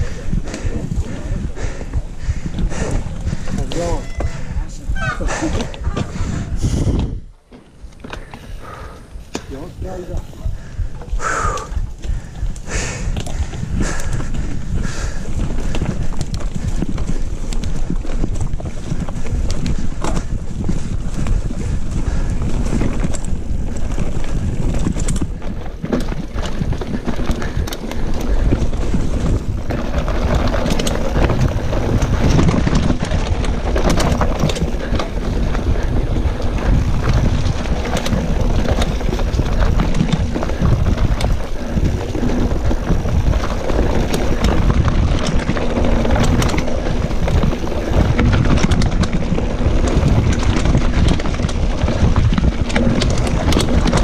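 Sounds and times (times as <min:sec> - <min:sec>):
bike rattling and knocking: 0:00.0 - 0:54.0
tyres rolling on dirt: 0:00.0 - 0:54.0
wind buffeting microphone: 0:00.0 - 0:54.0.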